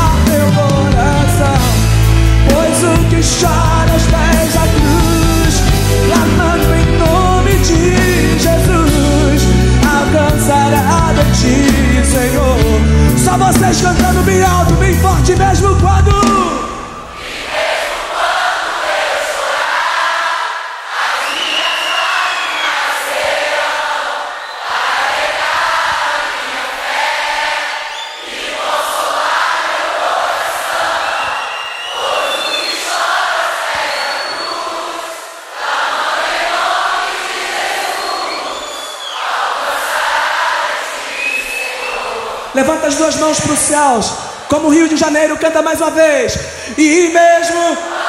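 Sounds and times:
crowd singing a worship song: 0:16.4 - 0:44.4, 0:47.7 - 0:48.0.

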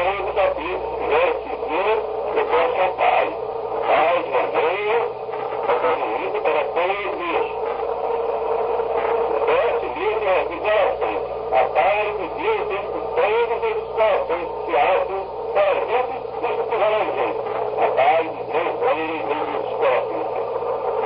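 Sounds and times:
man speaking: 0:00.0 - 0:07.7, 0:09.0 - 0:20.4
steady low hum: 0:00.0 - 0:21.0.

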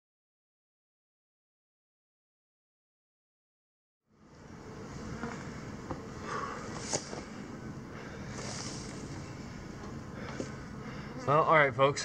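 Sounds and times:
rustling in grass: 0:04.9 - 0:07.4, 0:08.1 - 0:09.6.

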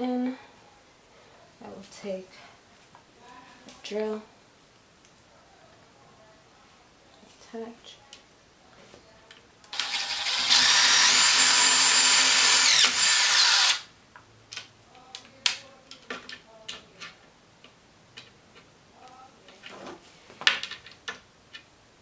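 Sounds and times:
cordless drill driving screw: 0:09.7 - 0:13.8.

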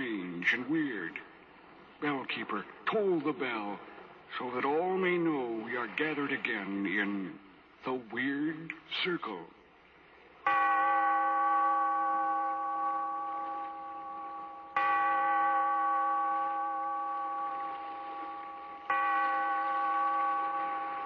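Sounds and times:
large bell tolling: 0:10.4 - 0:21.0.

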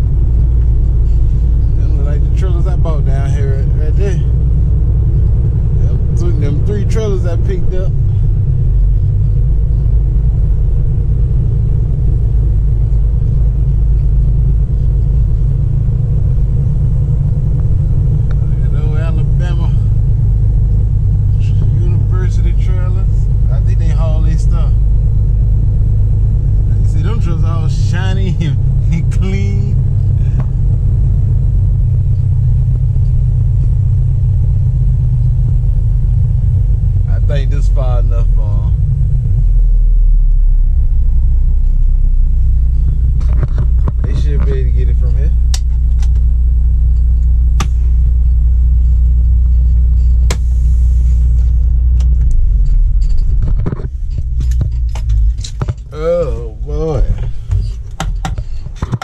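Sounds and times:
vehicle engine and road rumble: 0:00.0 - 0:59.0
person speaking: 0:26.7 - 0:30.4, 0:44.0 - 0:45.5, 0:55.8 - 0:57.8.

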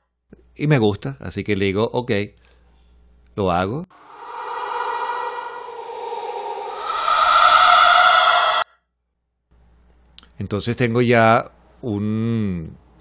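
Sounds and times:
stretched hen clucking drone: 0:03.9 - 0:08.6.

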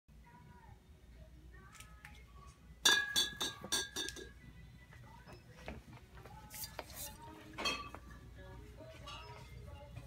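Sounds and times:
glass clinking: 0:02.8 - 0:04.4, 0:07.6 - 0:08.0.

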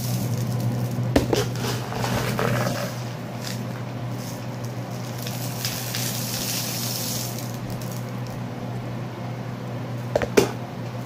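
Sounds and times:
dry rice and beans pouring: 0:00.0 - 0:08.4.

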